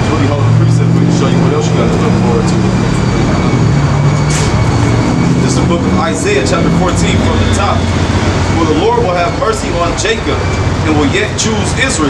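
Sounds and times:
motor engine hum: 0:00.0 - 0:12.0.

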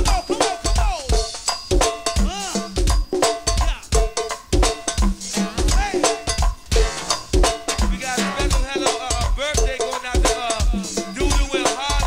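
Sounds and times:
cowbell: 0:00.0 - 0:12.0
drum kit beat: 0:00.0 - 0:12.0.

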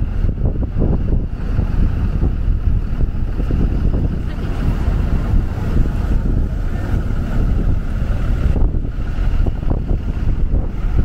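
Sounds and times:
street traffic: 0:00.0 - 0:11.0
wind buffeting microphone: 0:00.0 - 0:11.0.

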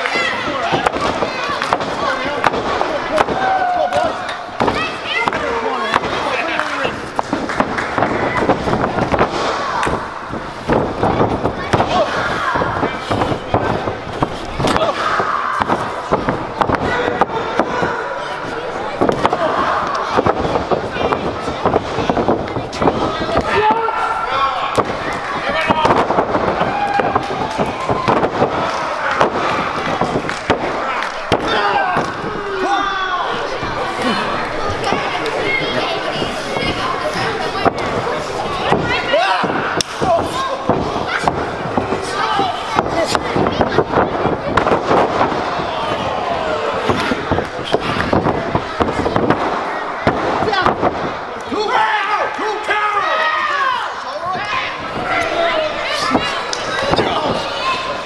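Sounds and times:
crowd shouting: 0:00.0 - 0:58.0.

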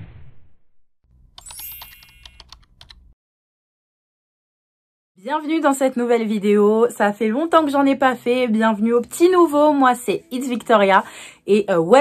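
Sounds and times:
keyboard typing clicks: 0:01.4 - 0:03.1.

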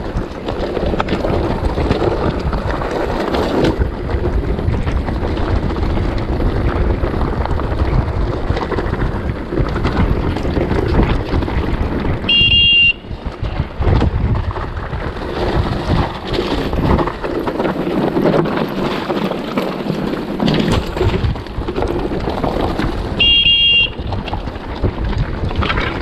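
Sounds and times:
mountain bike rattling: 0:00.0 - 0:26.0
wind buffeting microphone: 0:00.0 - 0:26.0
brake squealing: 0:12.0 - 0:13.4, 0:22.1 - 0:25.0.

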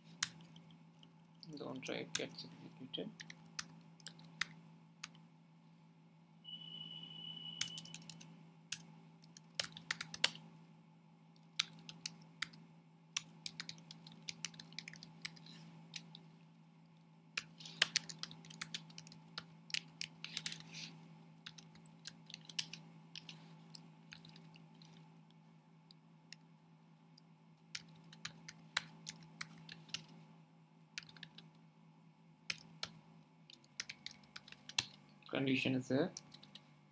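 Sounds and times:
keyboard typing: 0:03.2 - 0:05.2, 0:07.4 - 0:10.4, 0:11.4 - 0:12.6, 0:13.2 - 0:16.2, 0:17.4 - 0:20.8, 0:21.4 - 0:25.0, 0:27.6 - 0:30.1, 0:31.0 - 0:31.5, 0:32.5 - 0:35.0, 0:36.2 - 0:36.6.

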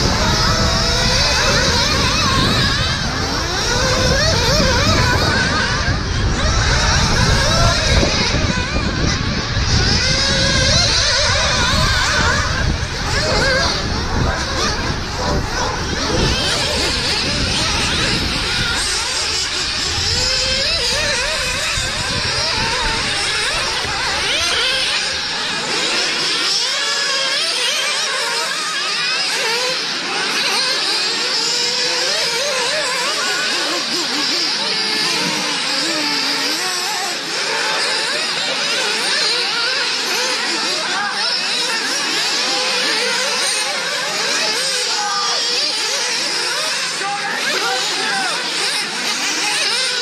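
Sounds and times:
rc buggy engines whining: 0:00.0 - 0:50.0.

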